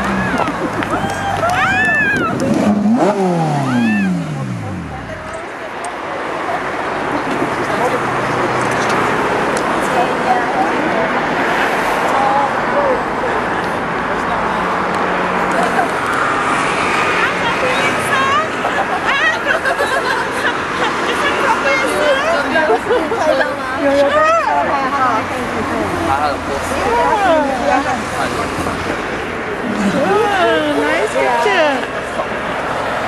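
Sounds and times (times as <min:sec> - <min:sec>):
car engine idling and revving: 0:00.0 - 0:22.5, 0:23.8 - 0:33.0
people chattering: 0:00.0 - 0:33.0.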